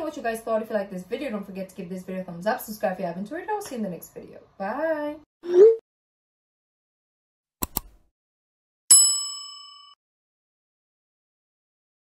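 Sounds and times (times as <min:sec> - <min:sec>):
notification bell ding: 0:08.9 - 0:10.0.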